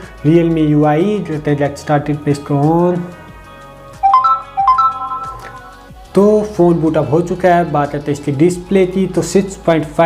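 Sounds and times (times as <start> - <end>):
soft background music: 0.0 - 10.0
smartphone startup chime: 4.0 - 5.6.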